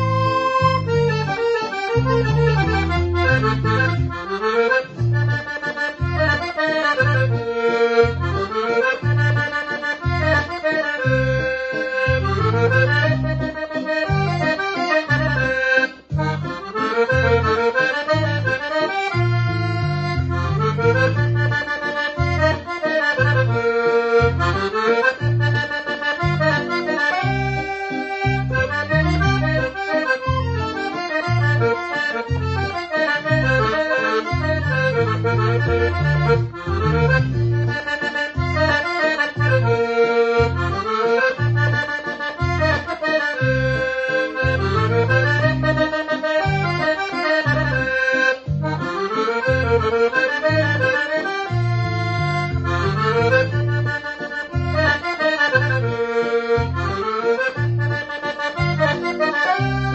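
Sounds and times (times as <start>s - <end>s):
piano accordion playing a waltz: 0.0s - 59.9s.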